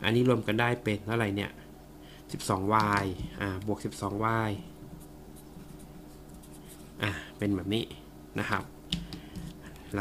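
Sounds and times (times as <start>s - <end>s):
marker scratching on paper: 5.0s - 7.0s.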